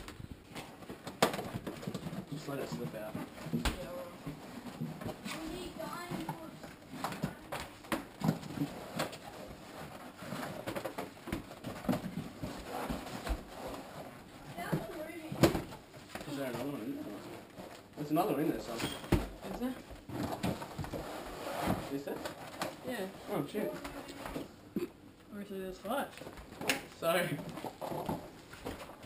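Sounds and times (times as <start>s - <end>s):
cardboard box scraping and rustling: 20.1s - 22.2s.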